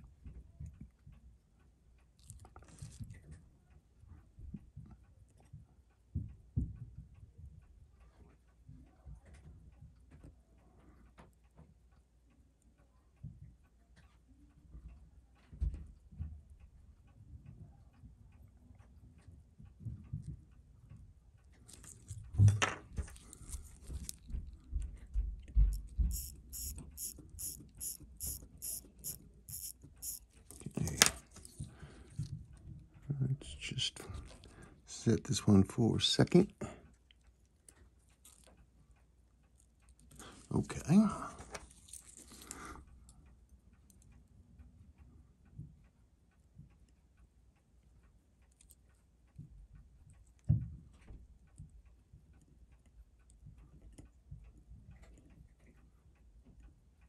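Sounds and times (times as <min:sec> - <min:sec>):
tweezers clicking on metal: 0:26.1 - 0:30.2.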